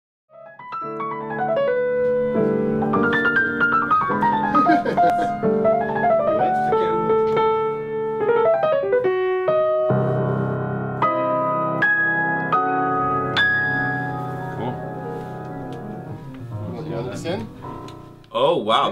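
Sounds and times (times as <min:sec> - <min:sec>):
solo jazz piano: 0:00.3 - 0:18.3.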